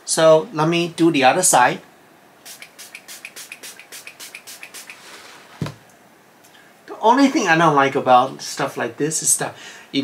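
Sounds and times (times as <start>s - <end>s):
pump spray bottle spritzing: 2.4s - 5.2s.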